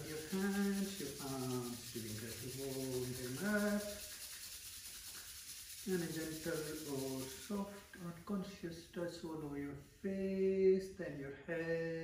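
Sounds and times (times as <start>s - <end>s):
hands rubbing together: 0.0s - 8.3s.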